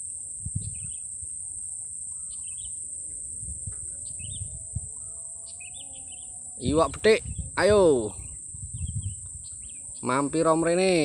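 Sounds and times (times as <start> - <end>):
bird chirping: 0.0 - 11.0
high-pitched insect drone: 0.0 - 11.0.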